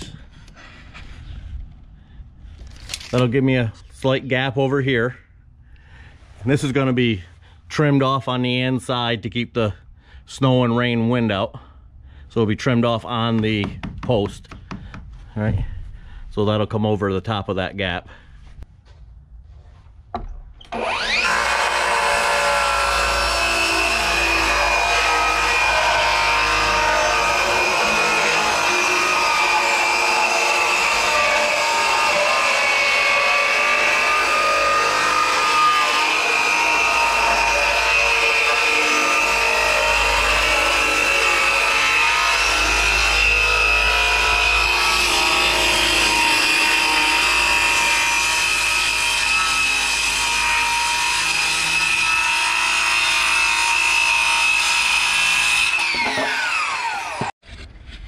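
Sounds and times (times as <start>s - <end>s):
circular saw cutting wood: 20.7s - 57.4s.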